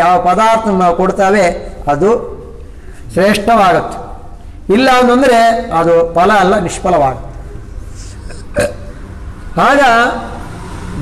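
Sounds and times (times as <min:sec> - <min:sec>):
man speaking: 0:00.0 - 0:07.3
low room noise: 0:00.0 - 0:11.0
throat vocal sound: 0:08.0 - 0:09.1.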